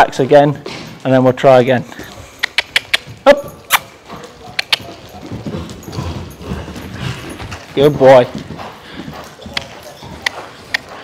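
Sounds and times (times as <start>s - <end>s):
hoofbeats trotting on sand: 0.2s - 11.0s
tongue clicks: 2.4s - 3.9s, 4.6s - 5.0s.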